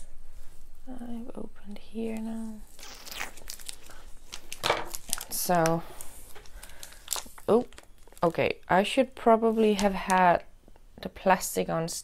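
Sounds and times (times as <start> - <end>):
foil package crinkling: 2.7 - 10.4.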